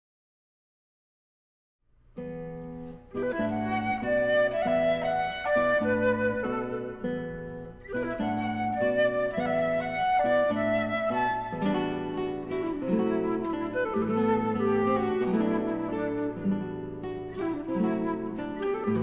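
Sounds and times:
fingerpicked classical guitar: 2.1 - 19.0
flute melody: 3.1 - 19.0.

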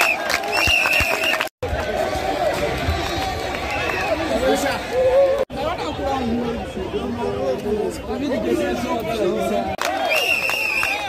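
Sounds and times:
group of people talking and calling: 0.0 - 11.0.

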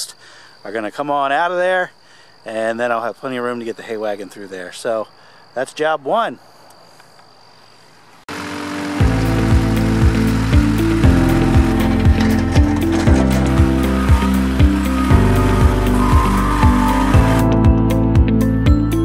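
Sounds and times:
intro music with steady beat: 8.3 - 19.0.

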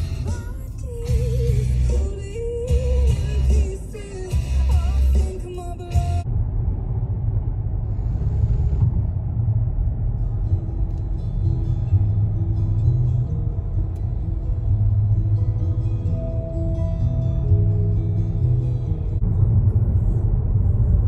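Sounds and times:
car cabin road rumble: 0.0 - 21.0
soft music with held notes: 10.9 - 19.2.

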